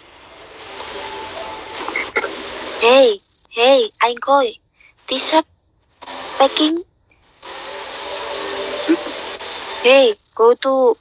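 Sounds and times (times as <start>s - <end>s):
steady blower-like rushing: 7.3s - 10.1s.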